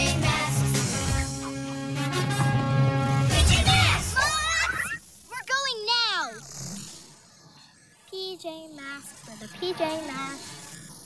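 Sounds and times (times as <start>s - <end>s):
cartoon character voice: 3.9s - 6.4s, 8.2s - 10.5s.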